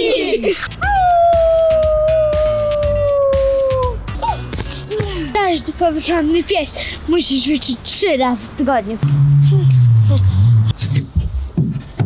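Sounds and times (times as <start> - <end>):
background music with steady beat: 0.6 - 5.6.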